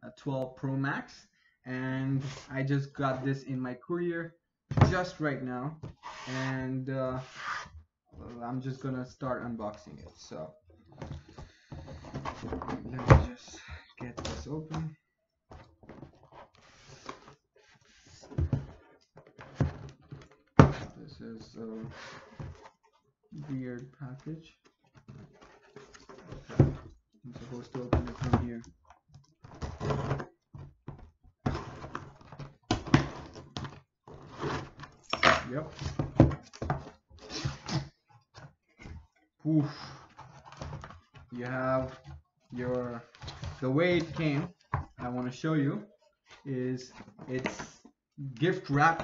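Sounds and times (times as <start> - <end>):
cardboard scraping: 5.8 - 6.5, 7.2 - 8.4, 11.0 - 13.4, 15.5 - 23.6, 24.2 - 28.7, 29.4 - 49.0.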